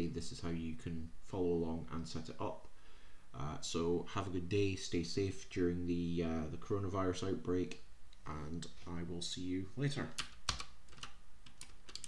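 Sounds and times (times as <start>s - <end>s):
keyboard keys clicking: 10.2s - 12.0s.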